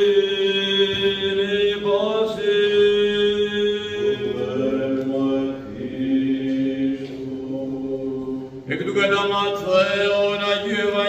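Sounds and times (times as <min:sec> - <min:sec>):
voices chanting long notes: 0:00.0 - 0:11.0.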